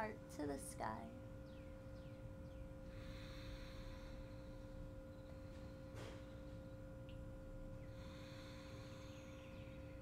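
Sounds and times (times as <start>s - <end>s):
faint low two-tone hum: 0.0s - 10.0s.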